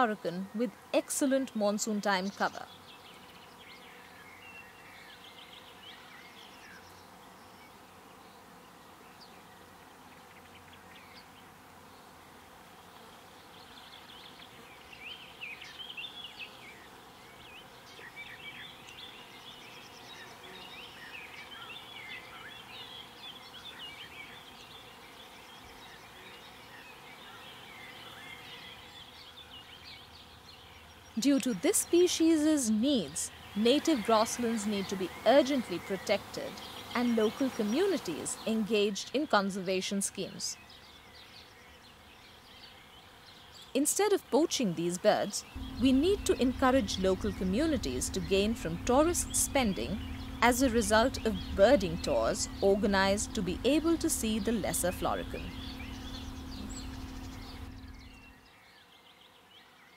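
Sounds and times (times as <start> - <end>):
small birds chirping: 0.0 - 12.2, 13.0 - 59.9
insects: 2.0 - 44.1, 45.4 - 59.9.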